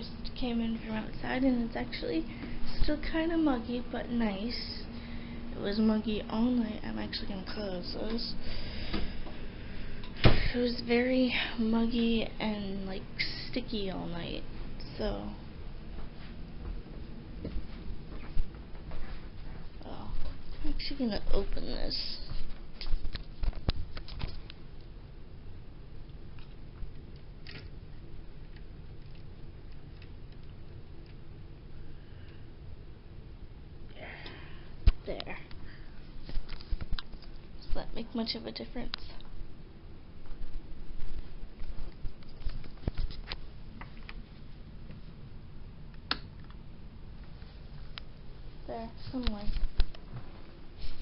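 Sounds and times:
steady low rumble: 0:00.0 - 0:51.0.

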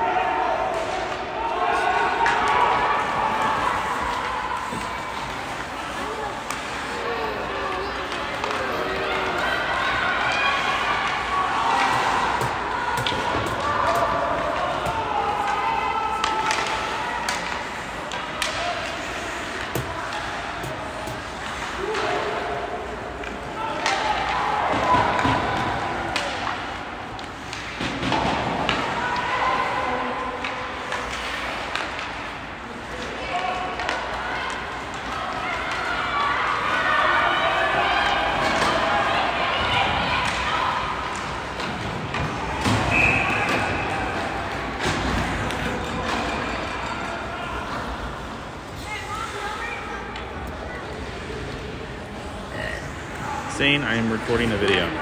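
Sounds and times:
spectators talking: 0:00.0 - 0:55.0
hockey sticks clacking on puck: 0:02.0 - 0:52.1.

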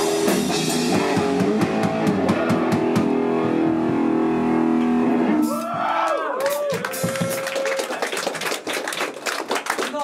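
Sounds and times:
small audience clapping: 0:05.6 - 0:10.0.

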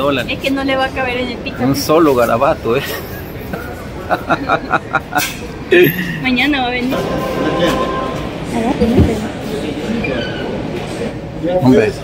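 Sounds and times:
low rumble of shop noise: 0:00.0 - 0:12.0.

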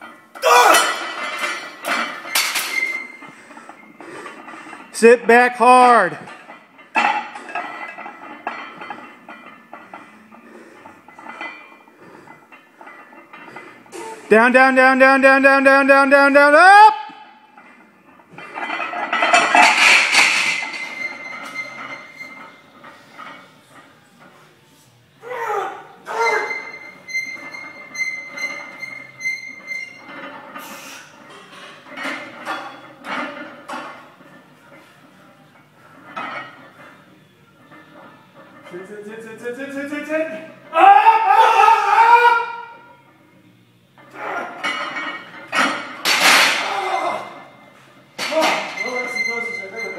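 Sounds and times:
barbell plates clanking: 0:00.0 - 0:05.2, 0:06.1 - 0:14.2, 0:17.4 - 0:24.5, 0:26.1 - 0:40.7, 0:44.0 - 0:49.9
man yelling strained: 0:00.4 - 0:01.0, 0:25.2 - 0:26.4, 0:40.7 - 0:42.8.

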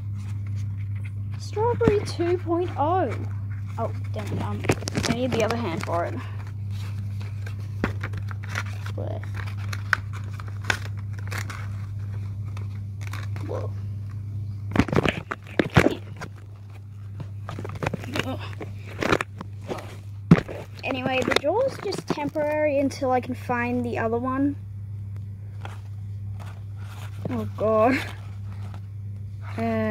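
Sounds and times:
steady low hum: 0:00.0 - 0:29.9
paper crinkling and rustling: 0:00.2 - 0:13.5, 0:14.7 - 0:22.7, 0:25.5 - 0:28.9.

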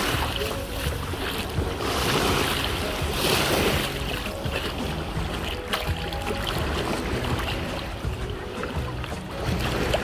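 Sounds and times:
small waves lapping on sand: 0:00.0 - 0:10.0.

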